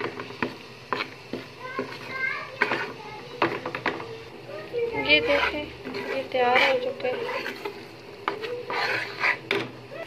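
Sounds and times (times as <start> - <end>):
flour frying in fat: 0.0 - 10.0
spoon scraping steel pan: 0.9 - 3.6, 5.0 - 9.7.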